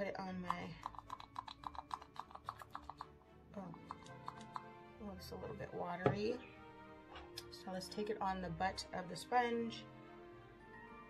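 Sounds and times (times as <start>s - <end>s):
bottle being shaken rattling: 0.5s - 3.2s, 3.8s - 4.6s.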